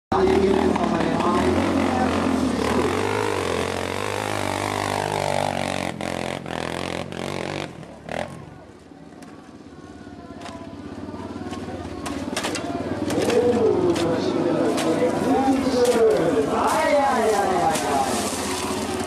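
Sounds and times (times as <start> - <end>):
people's voices: 0.1 - 5.6, 7.9 - 19.0
off-road motorcycle engines revving: 0.1 - 19.0.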